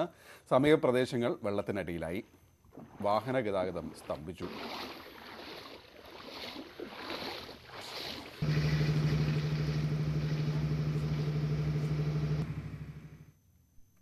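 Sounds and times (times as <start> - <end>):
low engine drone: 8.4 - 13.3.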